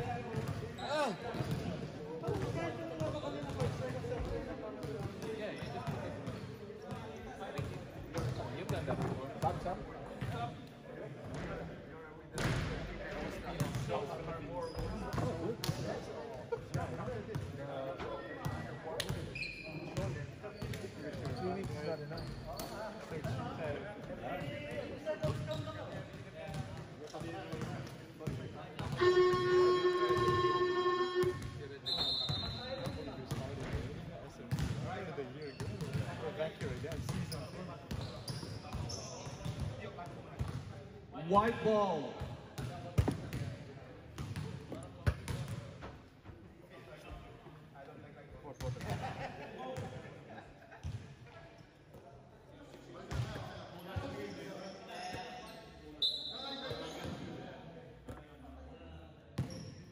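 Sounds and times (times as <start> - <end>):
basketballs bouncing on court: 0.0 - 10.4, 34.5 - 35.0, 35.6 - 40.7, 42.6 - 43.6, 44.2 - 45.7, 50.8 - 51.0
players chattering: 0.0 - 40.3
game buzzer: 29.0 - 31.4.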